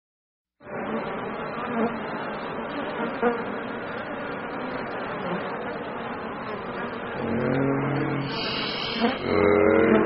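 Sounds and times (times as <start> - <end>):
electronic insect-like buzzing drone: 0.6 - 10.0.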